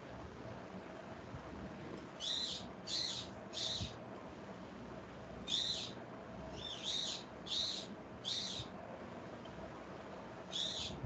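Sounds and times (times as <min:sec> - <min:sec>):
faint steady hum: 0:00.0 - 0:11.0
bird calling: 0:02.2 - 0:04.0, 0:05.5 - 0:08.7, 0:10.5 - 0:11.0.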